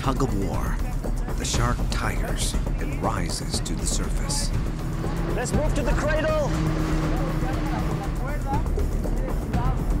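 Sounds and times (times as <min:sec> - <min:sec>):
background music: 0:00.0 - 0:10.0
water noise: 0:04.4 - 0:09.2
small boat motor running: 0:04.5 - 0:10.0.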